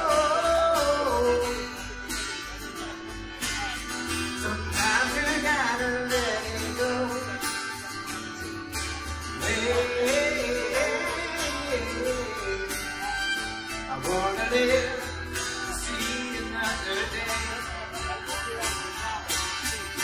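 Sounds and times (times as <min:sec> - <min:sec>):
strummed acoustic guitar: 0:00.0 - 0:20.0
upright bass: 0:00.0 - 0:20.0
fiddle: 0:07.8 - 0:15.2.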